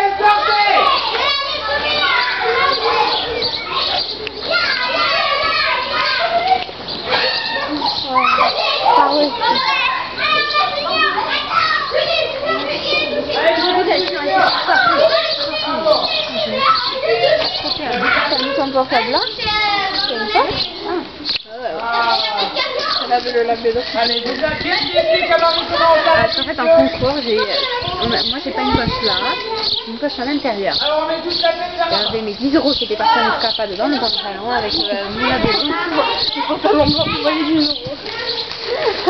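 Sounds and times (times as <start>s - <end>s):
young voices chattering: 0.0s - 39.0s.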